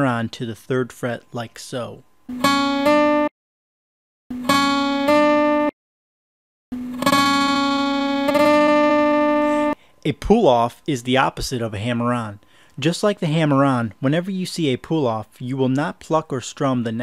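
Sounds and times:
acoustic guitar note hammer-on: 0:02.3 - 0:03.3, 0:04.3 - 0:05.7, 0:06.8 - 0:09.8.

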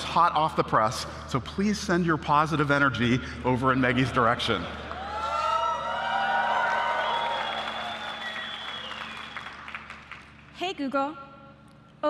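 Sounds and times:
audience applauding: 0:04.2 - 0:10.6
audience cheering and whooping: 0:04.8 - 0:09.8.

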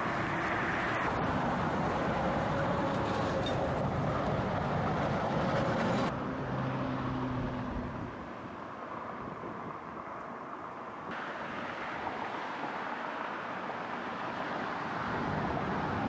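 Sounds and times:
motorway traffic: 0:00.0 - 0:16.0.

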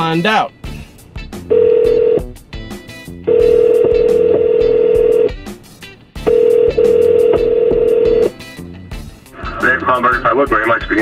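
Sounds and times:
telephone ringback tone: 0:01.5 - 0:02.4, 0:03.3 - 0:05.4, 0:06.3 - 0:08.3.

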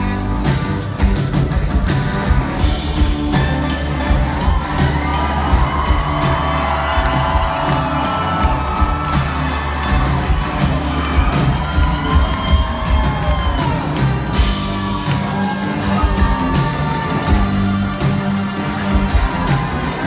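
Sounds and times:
live rock band playing: 0:00.0 - 0:20.0
crowd cheering and whooping: 0:03.3 - 0:20.0.

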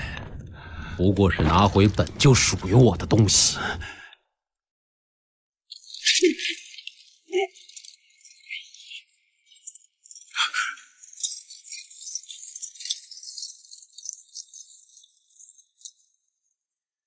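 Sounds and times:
metallic jingling and rattling: 0:01.1 - 0:03.5.

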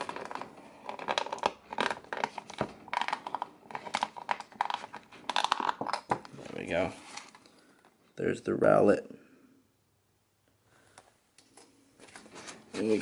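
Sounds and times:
plastic packaging crackling: 0:00.0 - 0:07.6.

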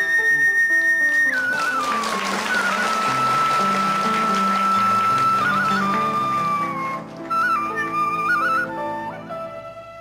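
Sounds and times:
flute playing slow melody: 0:00.0 - 0:10.0.

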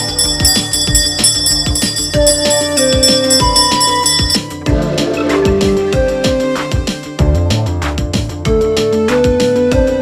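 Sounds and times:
hand bell ringing: 0:00.0 - 0:04.6
drum beats: 0:00.0 - 0:09.9
devotional music: 0:00.0 - 0:10.0.

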